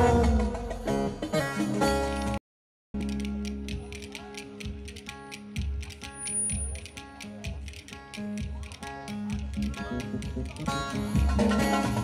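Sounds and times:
plucked-string folk music: 0.0 - 2.4, 3.0 - 12.0.

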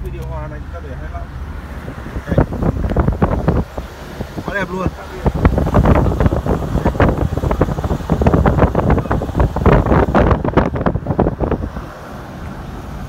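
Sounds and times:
wind buffeting microphone: 1.4 - 13.0.

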